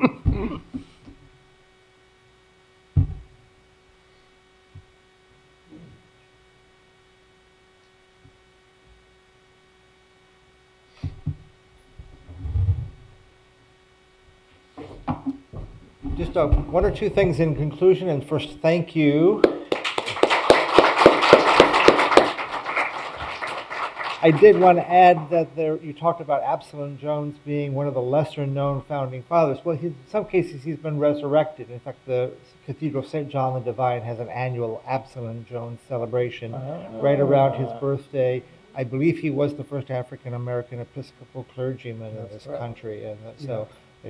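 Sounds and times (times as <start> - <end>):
electrical hum: 0.0 - 44.0
microphone thump: 3.0 - 3.4, 11.0 - 13.1, 14.8 - 17.9
audience applauding: 19.4 - 25.3
nearby hands clapping: 19.4 - 25.3.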